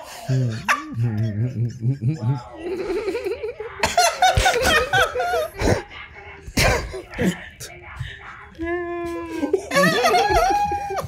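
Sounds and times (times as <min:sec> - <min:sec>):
people laughing: 0:00.1 - 0:05.9, 0:09.2 - 0:11.0.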